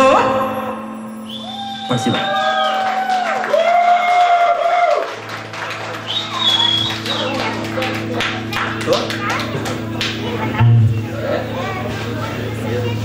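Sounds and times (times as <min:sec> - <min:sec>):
band playing held notes: 0:00.0 - 0:13.0
audience applause and cheering: 0:01.3 - 0:10.5
low steady drone: 0:04.4 - 0:13.0.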